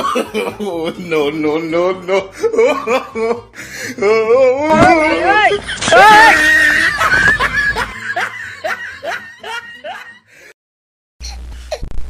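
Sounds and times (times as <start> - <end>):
high-pitched laughter: 5.2 - 10.2.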